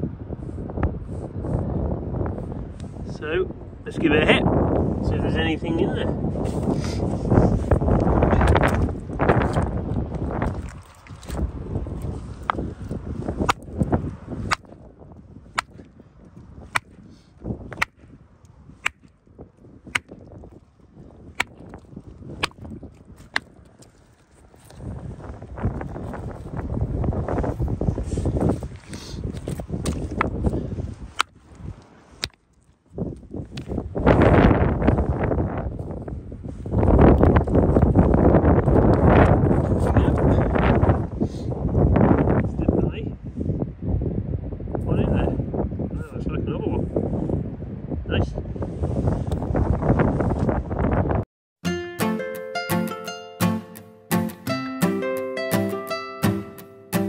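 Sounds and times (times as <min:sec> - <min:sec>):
wind buffeting microphone: 0:00.0 - 0:51.2
hammer striking rock: 0:14.5 - 0:14.7, 0:15.6 - 0:15.9, 0:16.7 - 0:16.9, 0:17.7 - 0:18.0, 0:18.8 - 0:19.1, 0:19.9 - 0:20.2, 0:21.4 - 0:21.6, 0:22.4 - 0:22.6.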